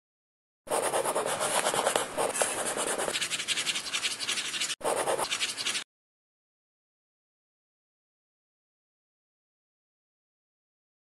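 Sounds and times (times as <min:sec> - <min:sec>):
pen scratching on paper: 0:00.7 - 0:05.8.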